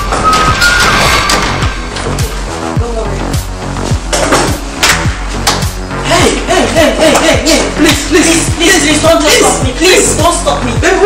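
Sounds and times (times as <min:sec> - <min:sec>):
background music with steady beat: 0:00.0 - 0:11.0
sharp snare hits: 0:04.1 - 0:05.7.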